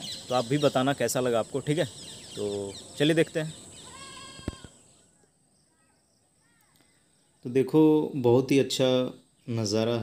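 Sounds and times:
faint chirps: 0.0s - 8.3s.

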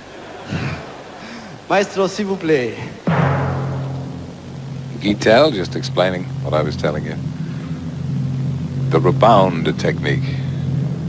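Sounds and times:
timpani roll: 3.1s - 11.0s.

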